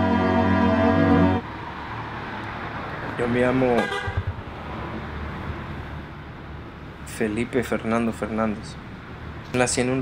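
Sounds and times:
night street rumble: 0.0 - 10.0.

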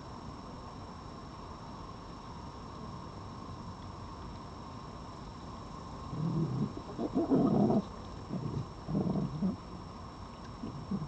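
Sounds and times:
fox growling: 6.1 - 9.6, 10.6 - 11.0.

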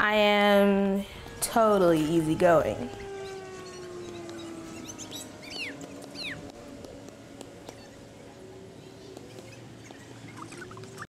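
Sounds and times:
faint steady hum: 0.0 - 11.0
bird chirping: 2.8 - 11.0.

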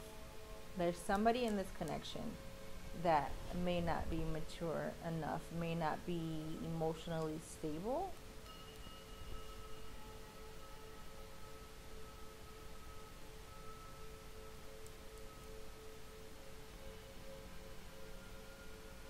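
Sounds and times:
meditation drone music: 0.0 - 19.0.

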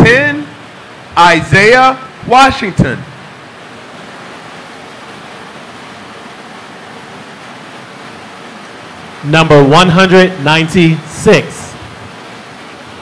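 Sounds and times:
steady rushing hiss: 0.0 - 13.0.

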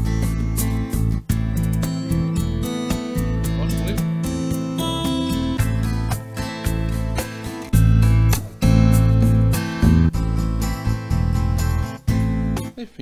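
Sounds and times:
strummed acoustic guitar: 0.0 - 12.8
bass: 0.0 - 13.0
drums in a steady rhythm: 0.0 - 13.0.

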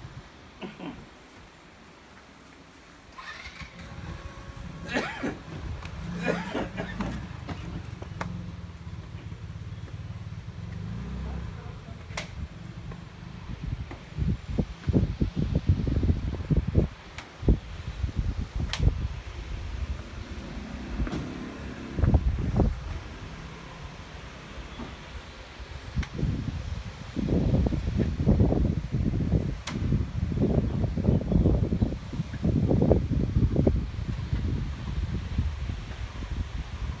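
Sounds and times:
wind buffeting microphone: 3.2 - 37.0.

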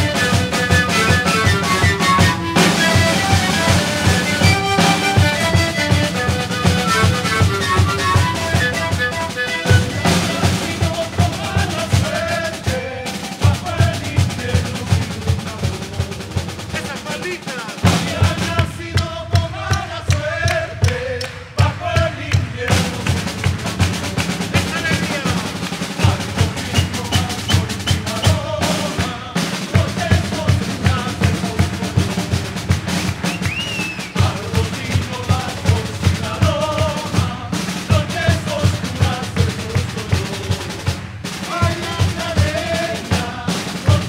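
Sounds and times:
panpipes playing melody: 0.0 - 10.8
bass drums beating: 0.0 - 16.9, 17.8 - 44.0
snare drum: 0.0 - 44.0.

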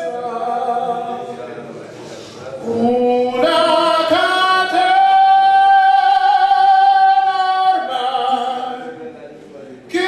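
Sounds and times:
person singing a long high note: 2.6 - 8.8.

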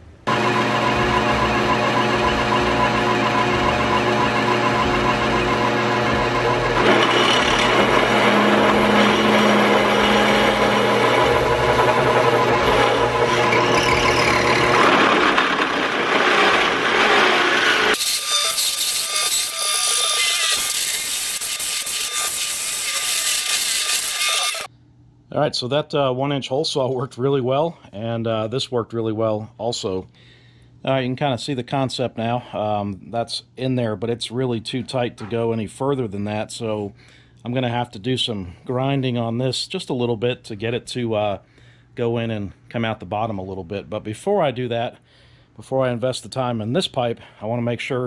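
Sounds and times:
drill press motor hum: 0.2 - 24.7
hole saw grinding steel: 0.3 - 24.7.

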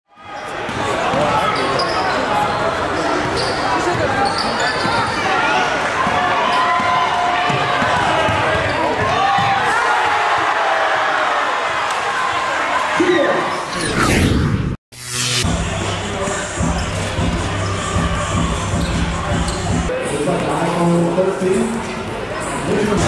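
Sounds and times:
crowd chatter and shouts: 0.1 - 14.0, 15.4 - 23.0.

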